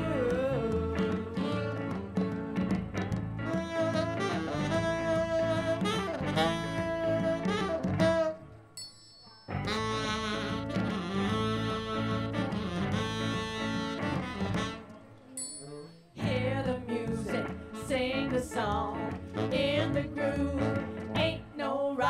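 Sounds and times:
live band playing: 0.0s - 8.8s, 9.5s - 21.6s.

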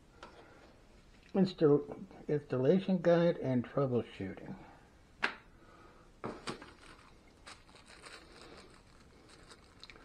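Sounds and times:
plastic packaging rustling: 6.3s - 10.0s.

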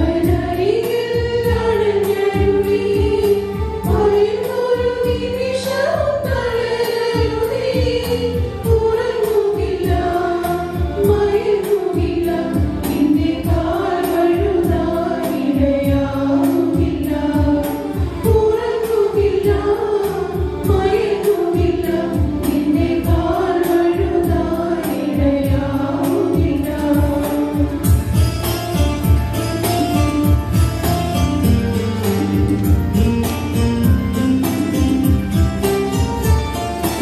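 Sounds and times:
choir singing a hymn: 0.0s - 28.0s
steady rhythmic beat: 26.8s - 37.0s.

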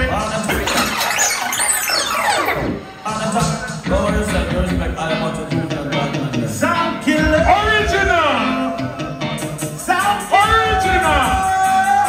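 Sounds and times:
music playing: 0.0s - 5.5s
record rewind squeal: 0.4s - 3.6s.

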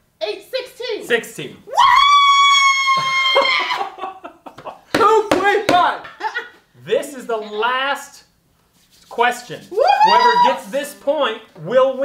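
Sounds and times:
woman whooping: 1.7s - 4.1s, 9.7s - 10.7s.

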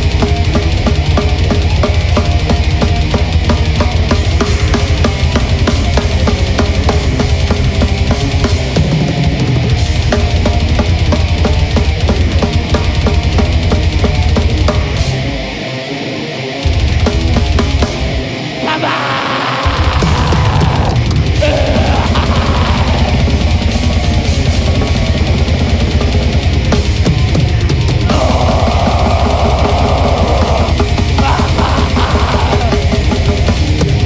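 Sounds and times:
heavy metal band playing: 0.0s - 34.0s.

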